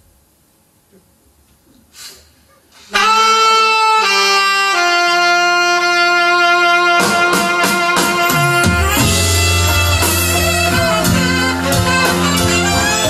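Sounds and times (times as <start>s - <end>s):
live band playing: 2.8s - 13.0s
saxophone-led horn section: 2.9s - 13.0s
drums: 5.8s - 13.0s.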